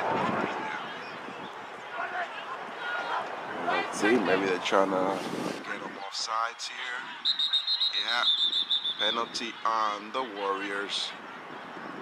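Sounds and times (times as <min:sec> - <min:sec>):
referee's whistle blowing: 0:07.2 - 0:09.3.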